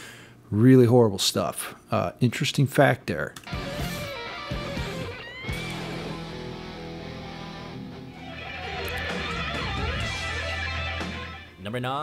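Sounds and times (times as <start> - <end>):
heavy metal music: 3.4 - 11.6
guitar squeal: 3.5 - 11.6.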